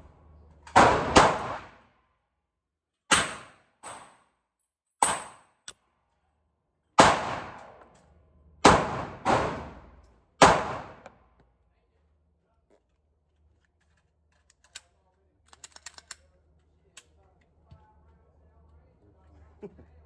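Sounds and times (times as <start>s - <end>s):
pistol shots echoing indoors: 0.6s - 2.0s, 3.1s - 5.7s, 7.0s - 11.3s.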